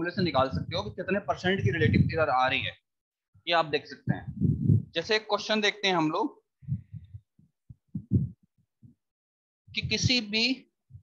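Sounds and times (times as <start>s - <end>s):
soft low thumps: 0.1s - 2.8s, 4.1s - 5.0s, 6.6s - 9.0s, 9.7s - 10.2s.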